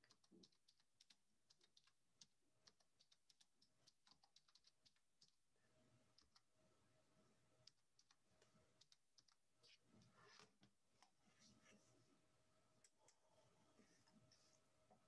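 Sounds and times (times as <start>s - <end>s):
typing on computer keyboard: 0.0s - 5.4s, 6.1s - 6.4s, 7.6s - 9.4s.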